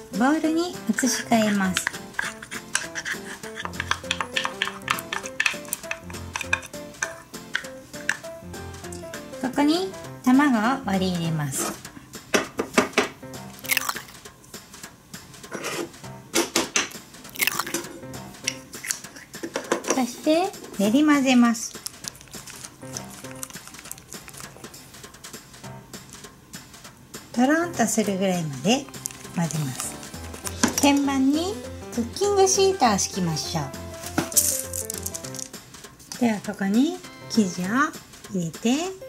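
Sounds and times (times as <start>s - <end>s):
background music with stepped melody: 0.0s - 39.0s
spatula scraping metal bowl: 1.0s - 7.7s.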